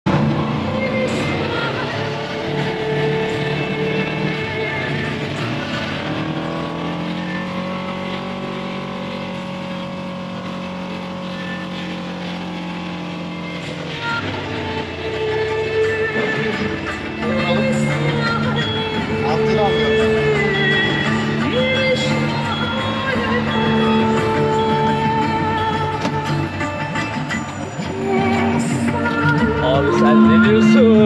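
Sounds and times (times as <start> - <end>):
utility vehicle engine running: 0.0 - 31.0.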